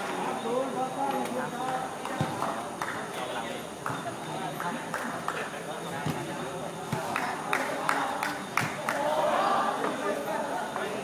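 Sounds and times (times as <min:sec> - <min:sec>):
men calling and chatting: 0:00.0 - 0:11.0.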